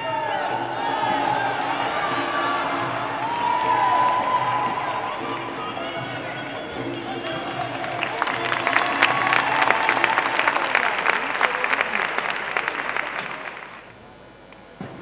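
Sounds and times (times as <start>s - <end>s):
audience applauding: 0.0s - 13.9s.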